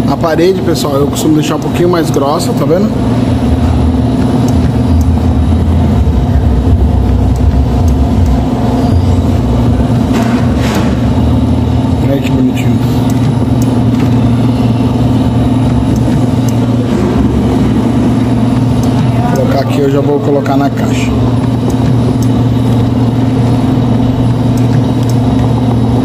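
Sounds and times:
machine motor hum: 0.0 - 26.0.

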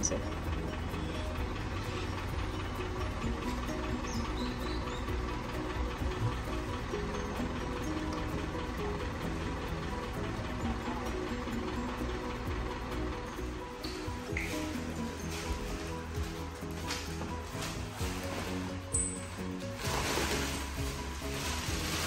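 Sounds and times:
background music with held notes: 0.0 - 22.0.

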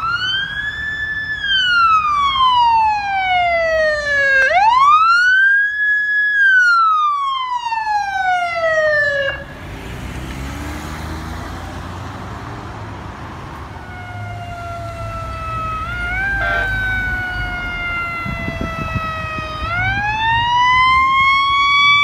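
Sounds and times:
electronic siren wailing: 0.0 - 9.5, 13.8 - 22.0
traffic rumble: 0.0 - 22.0.

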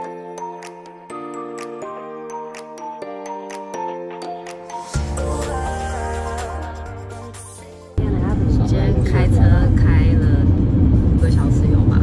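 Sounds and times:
car road and engine rumble: 8.0 - 12.0
people talking: 8.0 - 12.0.

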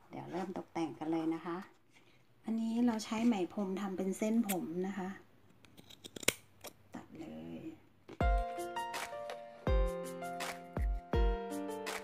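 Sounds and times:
scissors snipping yarn: 4.4 - 4.7.

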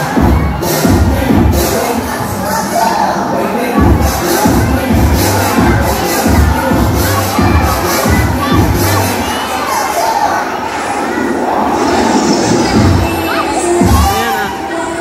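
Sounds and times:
children shouting and screaming: 0.0 - 1.2, 1.8 - 15.0
bass beat of background music: 0.0 - 1.9, 3.8 - 9.2, 12.6 - 14.4.

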